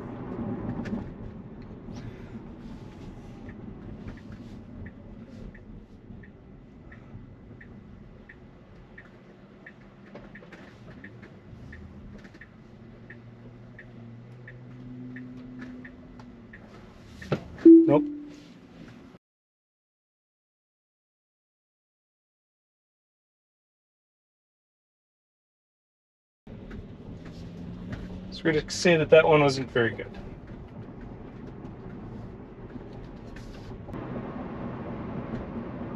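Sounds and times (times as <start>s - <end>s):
turn signal ticking: 0.7s - 18.4s
brief tone: 17.6s - 18.4s.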